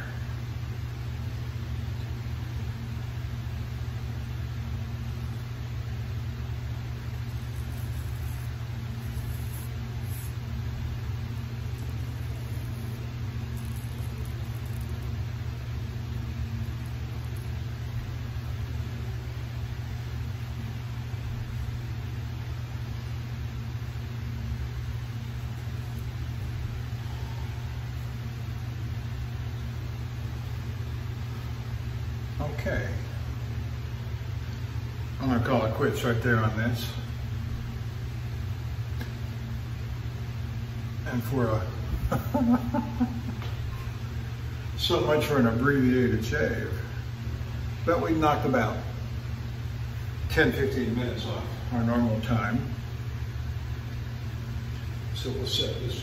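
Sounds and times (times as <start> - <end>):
low mechanical hum: 0.0 - 56.0.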